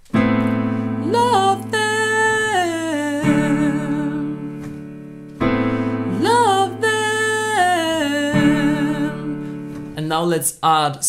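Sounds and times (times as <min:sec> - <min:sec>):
electric piano chords: 0:00.0 - 0:10.1
person singing vocal run: 0:01.0 - 0:04.6, 0:06.1 - 0:10.5.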